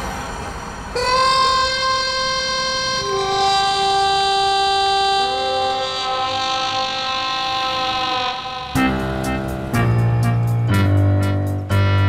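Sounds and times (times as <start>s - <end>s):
loud horn-like tone: 1.0s - 10.0s.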